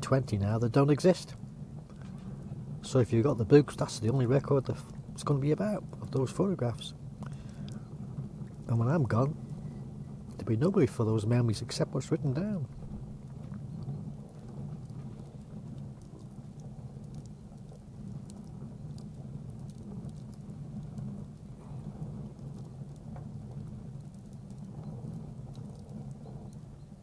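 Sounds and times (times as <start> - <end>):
steady low hum: 0.0 - 27.0
wood fire crackling and popping: 0.0 - 27.0.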